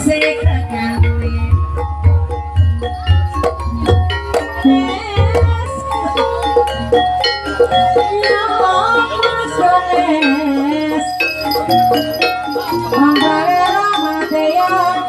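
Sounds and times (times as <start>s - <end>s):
drum strokes: 0.0s - 15.0s
gamelan percussion notes: 0.0s - 15.0s
wavering sung vocal: 7.8s - 12.0s, 12.6s - 15.0s.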